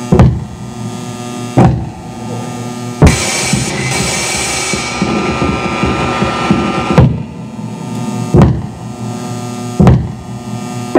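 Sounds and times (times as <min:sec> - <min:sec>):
electronic noise music: 0:00.0 - 0:10.9
loud sudden hits: 0:01.6 - 0:10.5.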